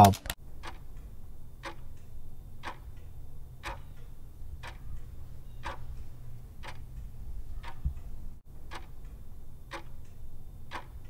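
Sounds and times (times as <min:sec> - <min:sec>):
faint low hum: 0:00.0 - 0:11.0
countdown timer ticking: 0:03.6 - 0:08.0.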